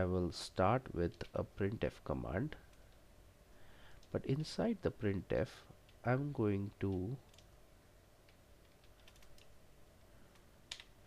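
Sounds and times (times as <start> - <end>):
computer keyboard keystrokes: 6.9 - 7.5, 8.3 - 9.5, 10.3 - 10.9.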